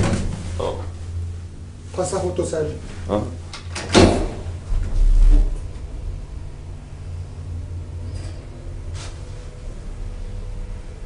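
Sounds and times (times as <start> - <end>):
steady low hum: 0.0 - 11.0
elevator door clicks: 3.5 - 5.5
heavy low thump: 3.9 - 6.8.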